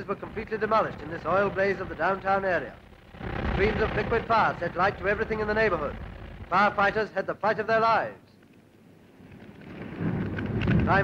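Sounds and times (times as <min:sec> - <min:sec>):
large fire rumbling and crackling: 0:00.0 - 0:07.0, 0:09.1 - 0:11.0.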